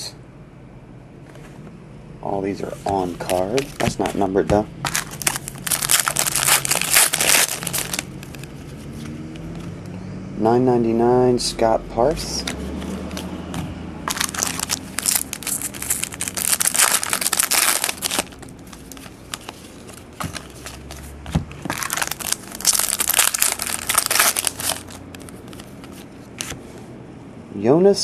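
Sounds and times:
trading cards rustling: 2.5 - 9.8, 12.2 - 26.8.

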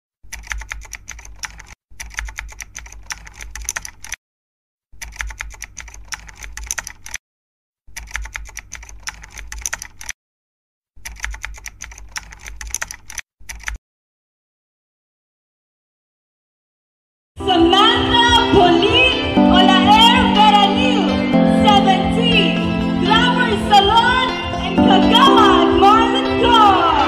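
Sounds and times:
rapid keyboard typing: 0.2 - 4.2, 4.9 - 7.2, 7.9 - 10.2, 11.0 - 13.8.

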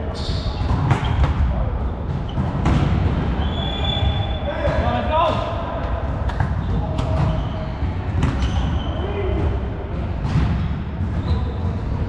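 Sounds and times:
volleyball being hit: 0.6 - 7.4.

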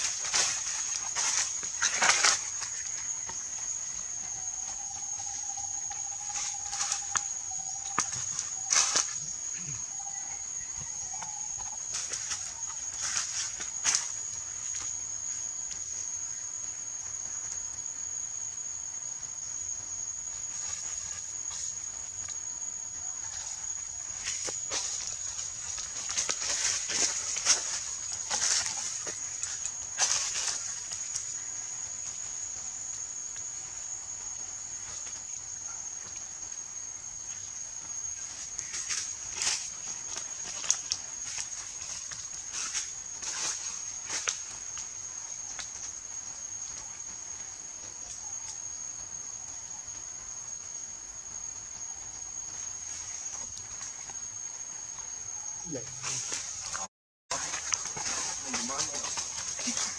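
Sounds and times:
crackling rustles: 0.0 - 4.1, 11.2 - 15.8, 20.1 - 32.3, 34.7 - 48.6, 55.9 - 59.9
high-pitched insect drone: 0.0 - 59.9.

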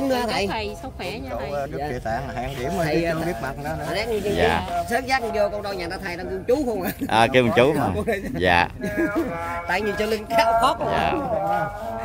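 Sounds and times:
people talking over each other: 0.0 - 12.0.

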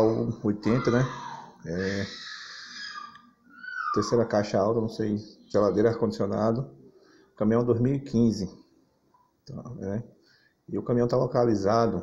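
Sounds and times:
man speaking: 0.0 - 2.2, 4.0 - 6.8, 7.4 - 8.7, 9.5 - 12.0.

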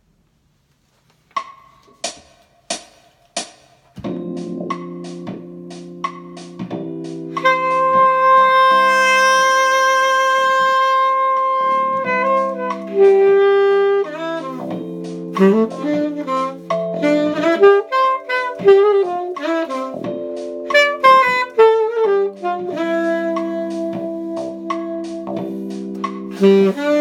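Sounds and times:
keyboard chords and bass groove: 3.4 - 27.0
alto saxophone notes: 7.3 - 27.0.

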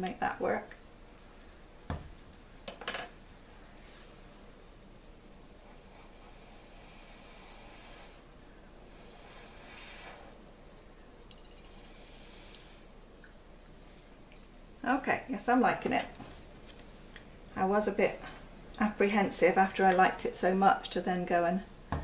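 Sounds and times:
soft blowing by mouth: 5.8 - 10.6.

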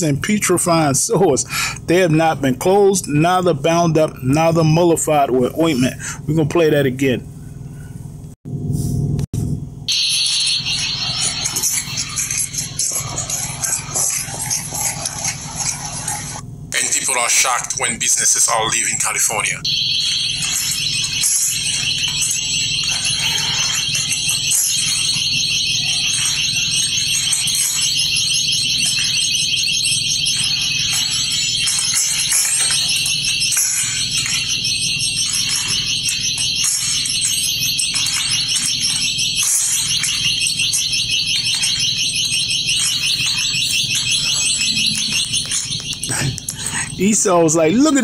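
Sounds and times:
warbling electronic alarm: 0.0 - 6.1, 9.8 - 48.0.

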